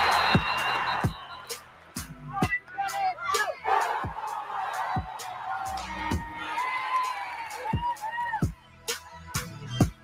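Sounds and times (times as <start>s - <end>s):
crowd cheering: 0.0s - 8.6s
music with a beat: 0.0s - 10.0s
voices whooping and shouting: 2.8s - 8.5s.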